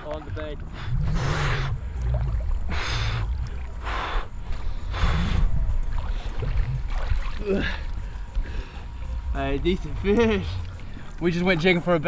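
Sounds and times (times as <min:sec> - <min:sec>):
swimmer breathing hard: 0:00.6 - 0:06.5, 0:07.3 - 0:09.3.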